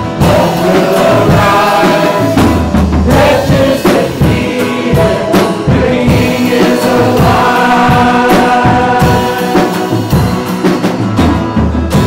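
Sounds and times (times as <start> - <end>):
voices singing together: 0.0 - 10.6
strummed acoustic guitar: 0.0 - 12.0.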